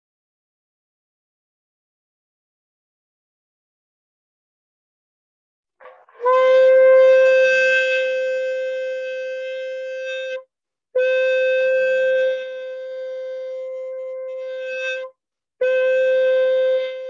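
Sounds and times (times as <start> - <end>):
conch shell blasts: 5.8 - 9.4.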